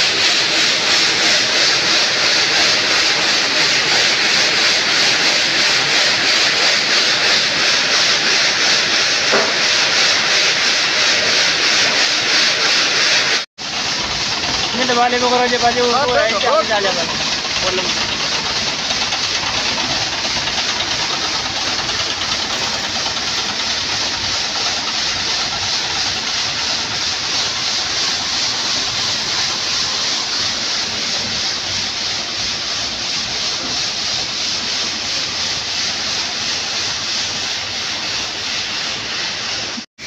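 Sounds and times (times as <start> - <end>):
diesel engine running under load: 13.6 - 32.3.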